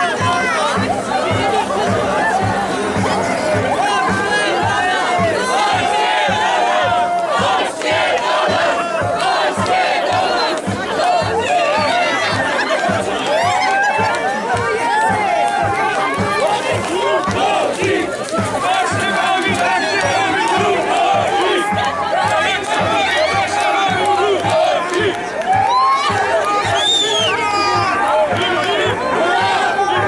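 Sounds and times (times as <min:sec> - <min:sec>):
crowd shouting and singing: 0:00.0 - 0:30.0
low thumping beat: 0:00.0 - 0:30.0.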